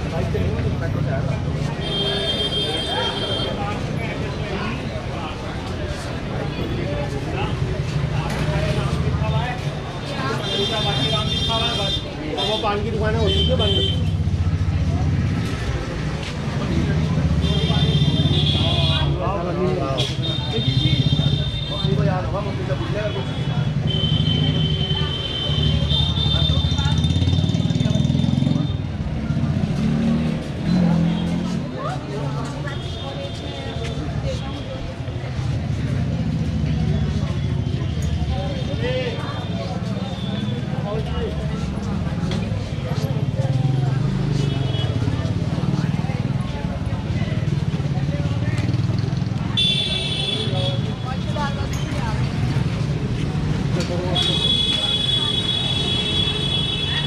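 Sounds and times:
motor vehicles running: 0.0s - 1.8s, 14.0s - 25.1s, 25.7s - 57.0s
passersby talking: 0.0s - 57.0s
people's voices: 0.0s - 57.0s.

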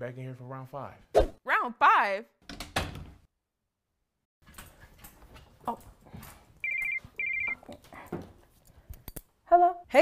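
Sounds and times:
telephone ringing: 6.6s - 7.6s.

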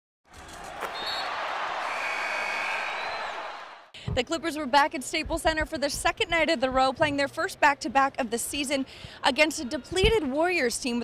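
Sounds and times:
arena crowd noise: 0.3s - 5.2s, 6.5s - 11.0s.

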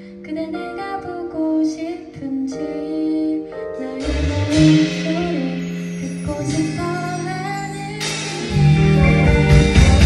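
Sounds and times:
woman singing into microphone: 0.0s - 9.3s
band playing: 4.0s - 10.0s.

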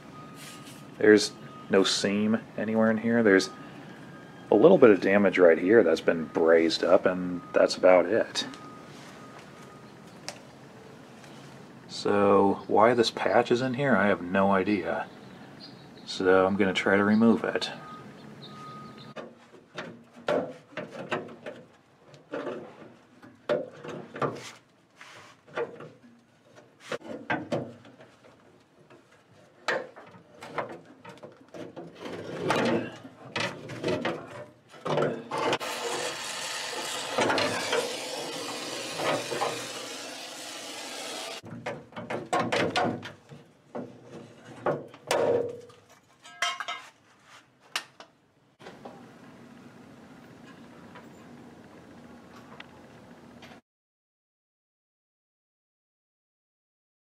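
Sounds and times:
metal clanks and scrapes: 28.9s - 42.9s, 43.8s - 47.4s.

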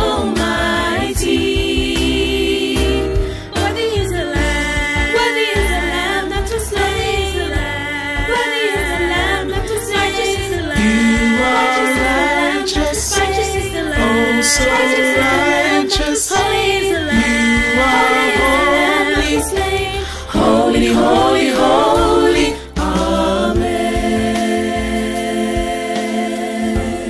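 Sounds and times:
low bass line: 0.0s - 26.0s
vocal group singing in harmony: 0.0s - 27.0s.

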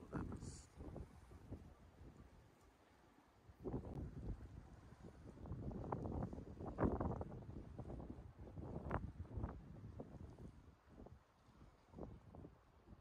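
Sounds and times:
wind buffeting microphone: 0.0s - 2.5s, 3.5s - 13.0s.

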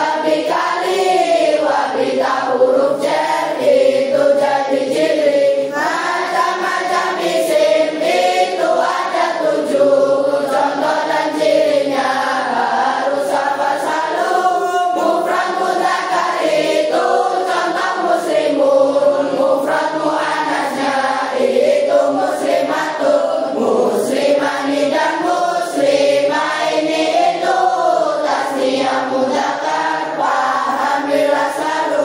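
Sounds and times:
children singing together: 0.0s - 32.0s.

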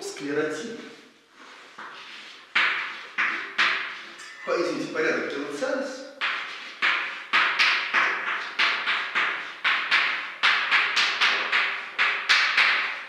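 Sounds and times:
chalk tapping and scratching: 1.4s - 4.2s, 6.2s - 13.0s.

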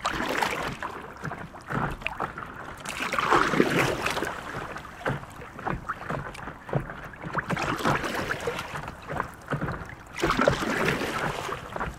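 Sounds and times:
water lapping and splashing: 0.0s - 11.9s.

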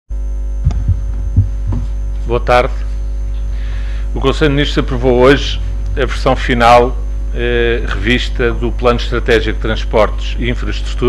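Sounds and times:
electrical mains hum: 0.1s - 11.0s.

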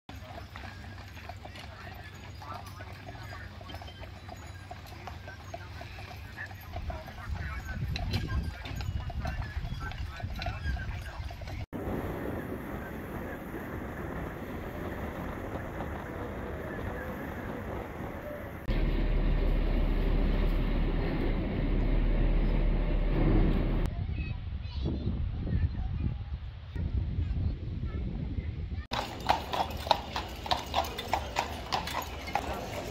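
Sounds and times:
hooves clip-clopping on pavement: 0.1s - 11.9s, 12.7s - 23.9s, 28.9s - 32.9s
voices of passers-by: 0.1s - 25.0s, 28.9s - 32.9s
wind on microphone: 6.7s - 29.0s
boat engine drone: 18.5s - 23.8s.

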